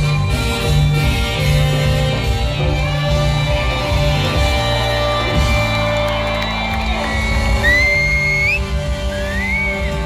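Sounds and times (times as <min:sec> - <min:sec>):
live reggae band with horns: 0:00.0 - 0:10.0
shrill rising whistle: 0:07.0 - 0:10.0.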